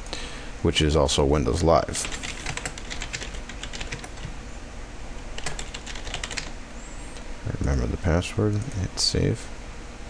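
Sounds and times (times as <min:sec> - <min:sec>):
typing on computer keyboard: 0:02.0 - 0:04.3, 0:05.4 - 0:06.5.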